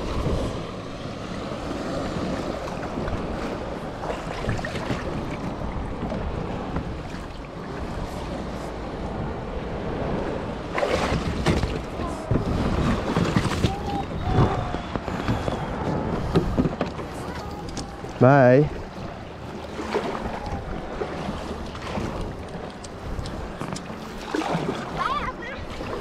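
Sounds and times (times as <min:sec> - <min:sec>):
water sloshing around a kayak: 0:00.0 - 0:26.0
wind on microphone: 0:00.0 - 0:26.0
knocks and splashes on hull: 0:01.4 - 0:08.0, 0:10.7 - 0:26.0.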